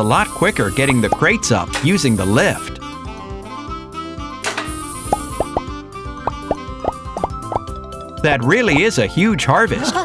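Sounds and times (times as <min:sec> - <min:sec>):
light cartoon music: 0:00.0 - 0:10.0.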